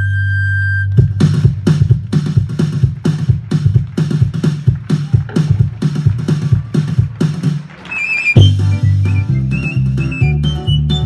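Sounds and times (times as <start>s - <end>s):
high flute melody: 7.8s - 11.0s.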